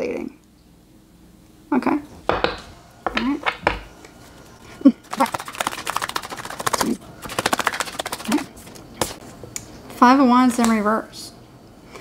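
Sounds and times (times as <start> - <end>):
cards being shuffled: 5.1 - 9.2.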